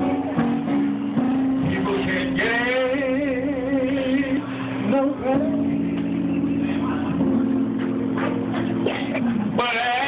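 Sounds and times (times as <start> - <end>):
guitar accompaniment: 0.0 - 10.0
man singing into a microphone: 1.6 - 7.2, 9.2 - 10.0.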